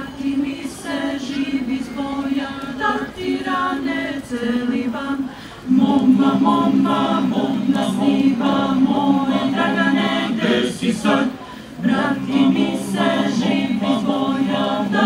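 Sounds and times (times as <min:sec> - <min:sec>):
choir singing a cappella: 0:00.0 - 0:15.0.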